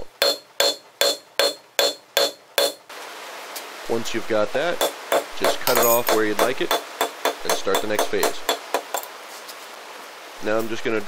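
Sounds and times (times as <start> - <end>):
hammer striking steel on anvil: 0.0 - 2.8, 4.8 - 9.1
steady hiss: 0.0 - 11.0.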